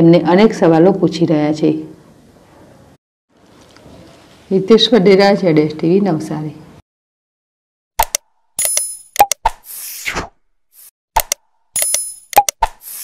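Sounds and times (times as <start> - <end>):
sharp mouse clicks: 8.0 - 9.9, 11.2 - 13.0
bell-like ding: 11.8 - 12.3.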